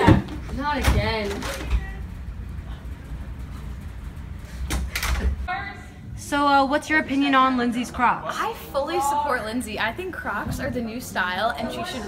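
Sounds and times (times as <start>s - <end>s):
low steady room rumble: 0.0s - 12.0s.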